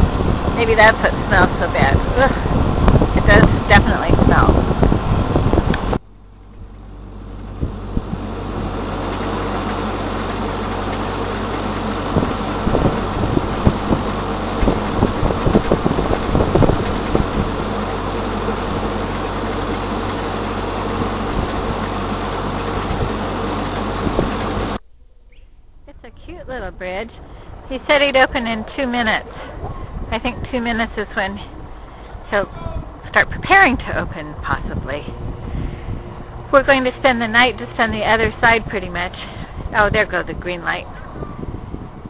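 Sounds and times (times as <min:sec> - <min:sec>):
boat engine running: 0:00.0 - 0:42.0.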